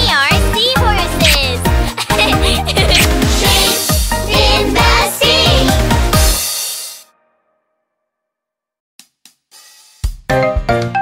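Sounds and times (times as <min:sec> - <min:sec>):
hi-hat taps: 0:09.0 - 0:10.2.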